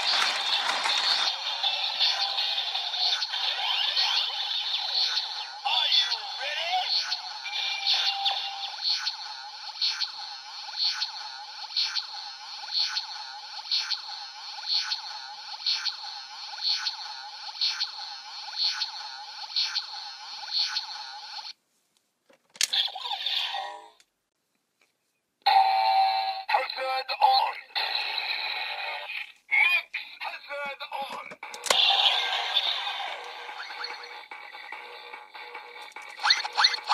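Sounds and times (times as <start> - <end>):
electronic toy sound effects: 0.0 - 21.5, 22.6 - 24.0, 27.2 - 36.9
synthesized toy beat pulsing: 0.2 - 21.5, 31.3 - 36.9.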